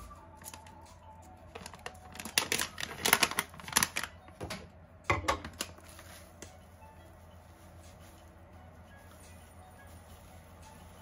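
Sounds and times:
foil bag crinkling: 1.5s - 4.4s, 5.5s - 11.0s.

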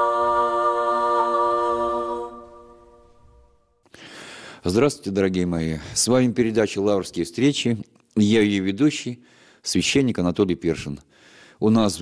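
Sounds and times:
women singing a cappella: 0.0s - 3.6s.

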